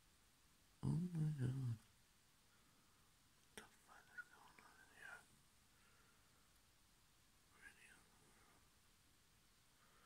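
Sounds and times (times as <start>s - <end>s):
person whispering: 0.8s - 1.9s, 3.5s - 5.3s, 7.5s - 8.6s.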